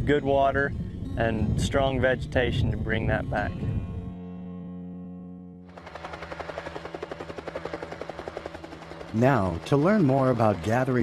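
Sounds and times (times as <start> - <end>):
helicopter rotor chop: 5.7 - 11.0.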